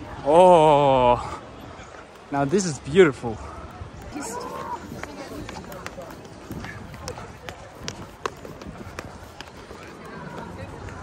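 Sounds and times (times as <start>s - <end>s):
faint voices: 0.0s - 11.0s
footsteps on stone steps: 3.9s - 11.0s.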